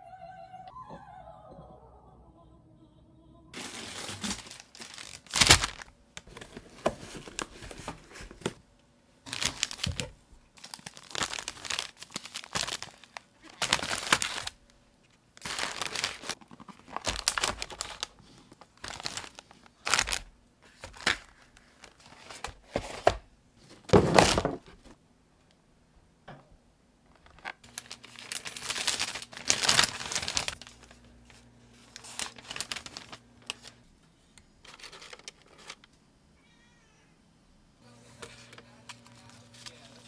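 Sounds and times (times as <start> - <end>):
plastic packaging crinkling: 3.6 - 8.6, 9.2 - 14.7, 15.3 - 23.2, 23.8 - 25.0, 27.1 - 33.8, 34.6 - 35.9, 38.2 - 40.0.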